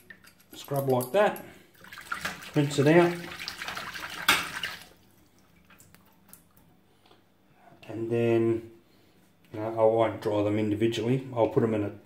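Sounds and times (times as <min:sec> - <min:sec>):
water splashing in metal sink: 0:00.0 - 0:06.7.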